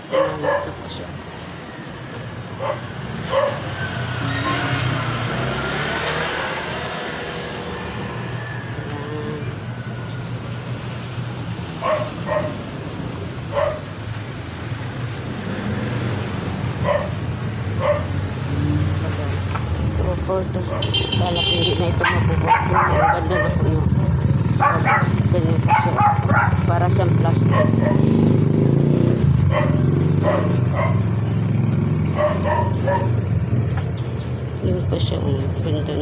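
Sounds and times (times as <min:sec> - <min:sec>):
motor vehicle rumbling: 0:00.0 - 0:36.0
dog barking: 0:00.1 - 0:00.9, 0:02.6 - 0:03.7, 0:11.8 - 0:12.6, 0:13.5 - 0:13.9, 0:16.8 - 0:17.2, 0:17.8 - 0:18.2, 0:20.7 - 0:21.1, 0:22.0 - 0:23.8, 0:24.6 - 0:26.7, 0:27.4 - 0:28.2, 0:29.4 - 0:31.2, 0:32.1 - 0:33.2.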